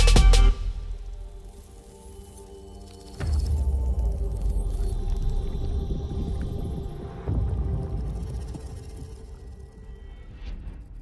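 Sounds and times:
steady humming tones: 0:00.0 - 0:11.0
deep low rumble: 0:03.3 - 0:11.0.

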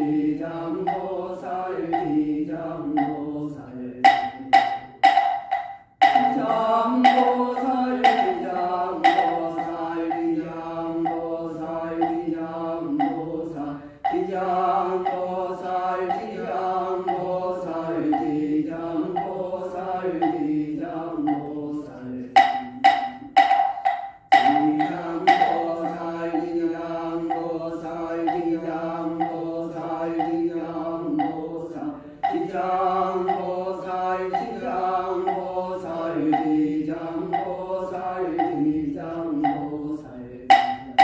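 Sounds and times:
monk chanting: 0:00.0 - 0:05.4, 0:06.0 - 0:41.0
wooden fish strikes: 0:01.9 - 0:02.2, 0:03.0 - 0:03.3, 0:04.0 - 0:10.4, 0:11.0 - 0:11.3, 0:13.0 - 0:13.4, 0:21.2 - 0:21.6, 0:22.3 - 0:26.7, 0:40.5 - 0:41.0.

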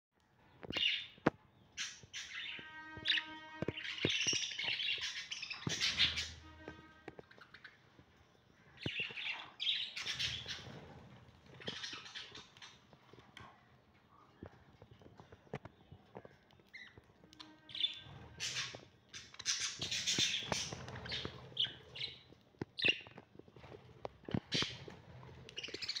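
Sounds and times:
budgerigars chirping and chattering: 0:00.7 - 0:06.6, 0:08.7 - 0:10.9, 0:11.5 - 0:12.8, 0:17.7 - 0:23.2, 0:24.3 - 0:26.0.

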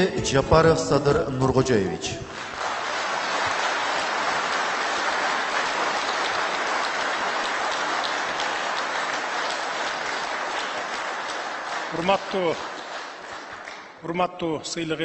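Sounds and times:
audience applauding: 0:02.0 - 0:14.0.

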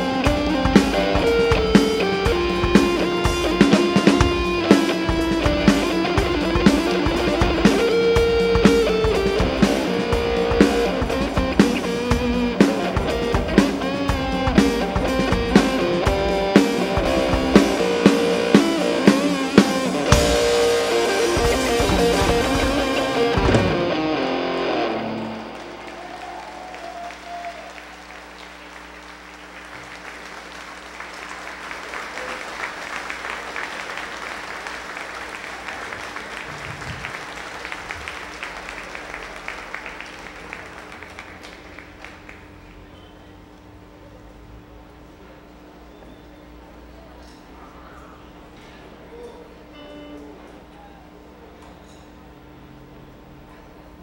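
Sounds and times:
orchestra playing rock piece: 0:00.0 - 0:26.2
drum kit: 0:00.0 - 0:26.4
electric guitar: 0:00.0 - 0:29.0, 0:48.6 - 0:50.8
audience applause: 0:00.0 - 0:42.9.

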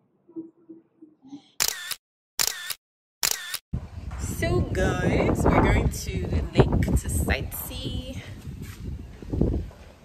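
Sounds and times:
camera shutter clicking: 0:01.6 - 0:03.6.

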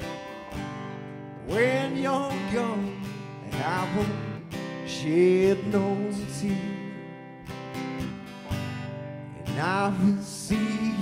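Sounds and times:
lead guitar bending notes: 0:00.0 - 0:11.0
strummed guitar: 0:00.0 - 0:11.0.

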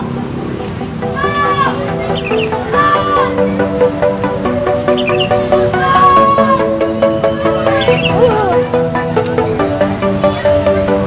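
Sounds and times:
multi-tone musical air horn: 0:05.2 - 0:07.9.

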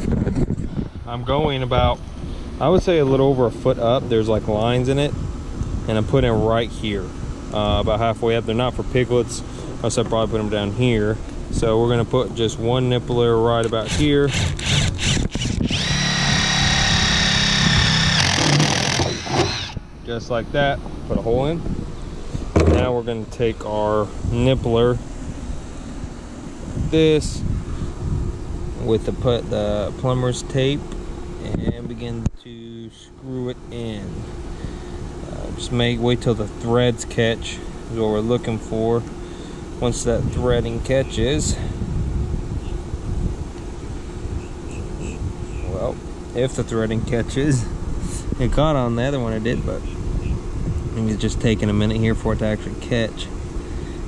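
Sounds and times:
wind buffeting microphone: 0:00.0 - 0:09.0, 0:13.8 - 0:18.2, 0:18.9 - 0:25.6, 0:26.6 - 0:29.2, 0:40.0 - 0:46.0, 0:47.0 - 0:52.4
faint steady hum: 0:00.0 - 0:54.0
cordless drill boring through plastic: 0:13.8 - 0:19.8.

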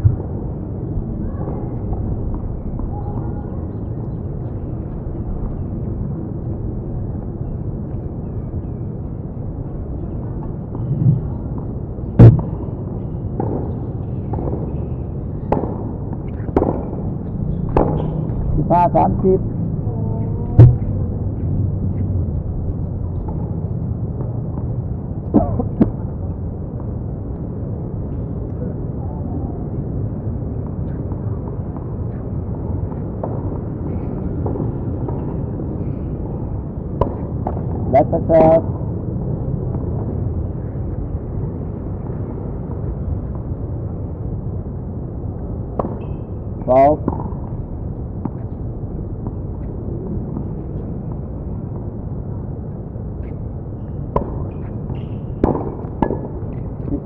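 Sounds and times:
low background rumble: 0:14.6 - 0:31.7
tennis ball strikes and bounces: 0:15.4 - 0:17.0, 0:17.6 - 0:18.4, 0:45.8 - 0:46.3, 0:53.2 - 0:57.0.

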